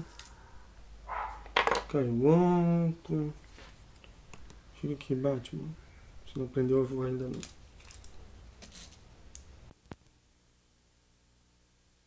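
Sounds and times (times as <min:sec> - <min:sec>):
toy figure clattering over: 0:01.5 - 0:01.9.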